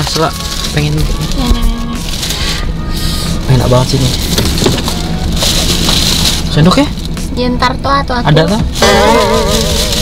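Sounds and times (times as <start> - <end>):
car cabin hum: 0.0 - 10.0
faint background music: 0.0 - 10.0.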